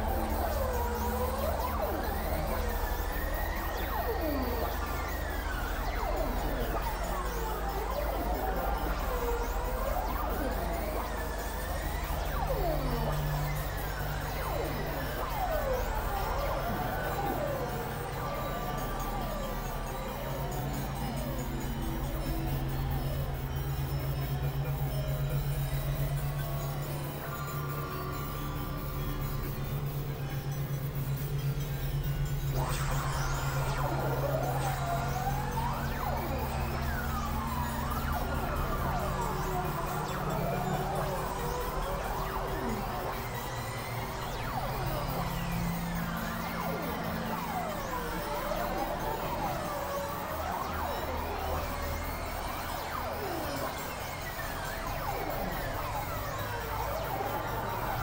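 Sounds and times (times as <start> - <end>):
low synthesizer drone: 0.0 - 58.0
synthesizer tones sweeping in pitch: 0.0 - 58.0.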